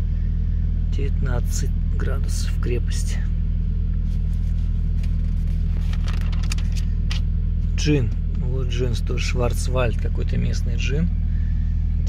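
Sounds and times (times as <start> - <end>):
car engine hum inside cabin: 0.0 - 12.0
paper page rustling: 4.0 - 7.2.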